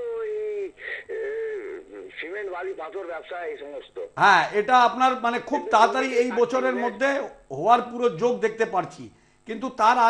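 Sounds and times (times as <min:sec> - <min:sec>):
person talking: 0:00.0 - 0:10.0.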